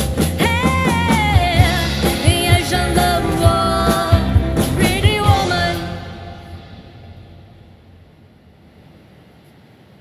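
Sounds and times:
band's last chord: 1.6s - 7.9s
low steady hum: 1.6s - 10.0s.

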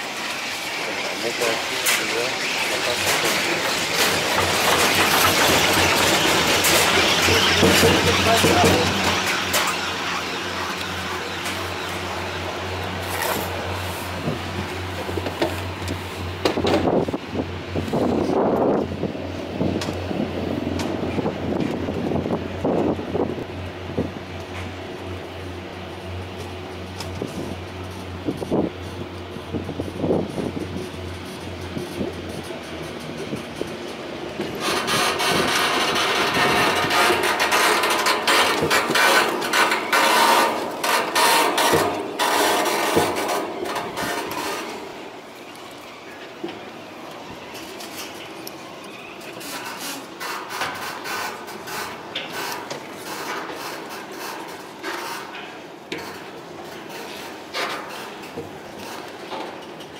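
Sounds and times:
knocks and creaks: 1.3s - 17.2s, 26.3s - 59.9s
loud clattering rattle: 1.4s - 11.6s, 29.6s - 45.2s.

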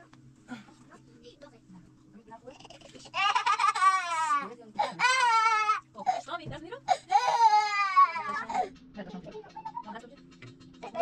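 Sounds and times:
toddler crying: 3.1s - 5.8s, 7.1s - 8.7s.

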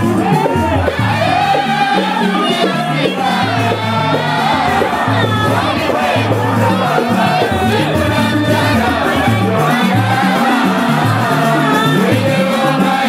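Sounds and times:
frame drums: 0.0s - 13.0s
men singing together: 0.0s - 13.0s.

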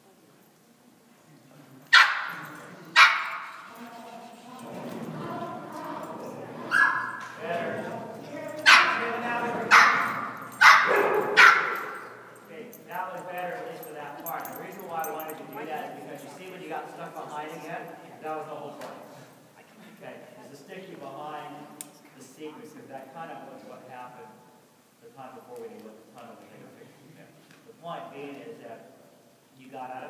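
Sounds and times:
dog barking with echo: 1.9s - 3.6s, 6.7s - 7.3s, 8.6s - 12.2s.

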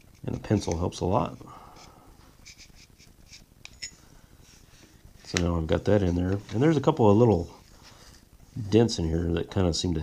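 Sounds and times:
soft rustling: 0.1s - 9.4s.

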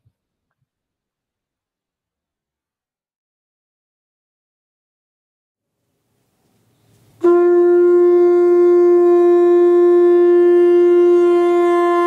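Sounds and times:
conch shell blown: 6.8s - 12.0s.

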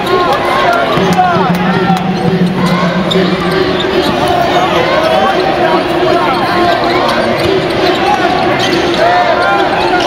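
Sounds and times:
crowd voices: 0.0s - 10.0s
sneakers squeaking: 0.9s - 10.0s.

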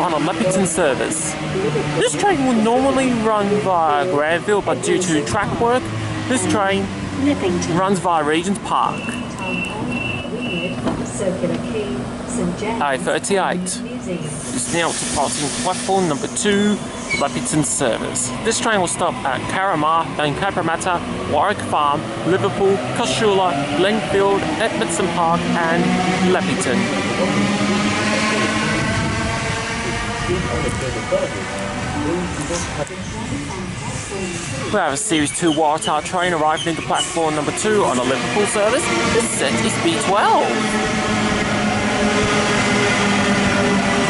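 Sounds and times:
electric train humming: 0.0s - 44.0s
wheel and rail noise: 0.0s - 44.0s.

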